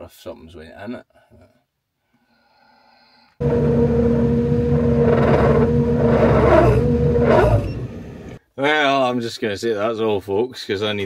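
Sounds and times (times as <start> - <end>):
combine harvester running: 3.4 - 8.4
constant machine whine: 3.4 - 8.4.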